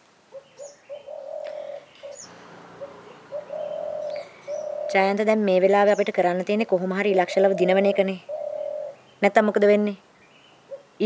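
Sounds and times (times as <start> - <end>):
dove cooing: 0.3 - 6.1, 6.9 - 9.0, 10.7 - 11.0
small bird chirping: 0.4 - 11.0.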